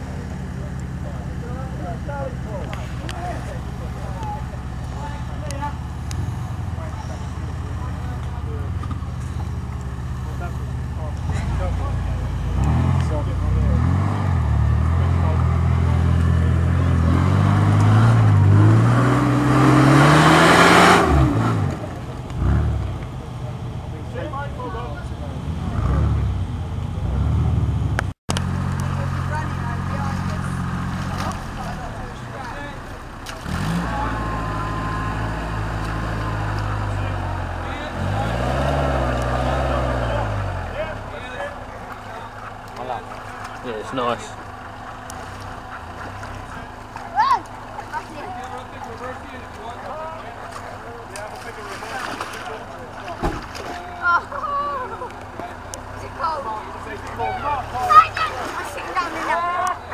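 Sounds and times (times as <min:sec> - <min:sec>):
engine running steadily: 0:00.0 - 0:59.9
off-road engine revving: 0:00.0 - 0:59.9.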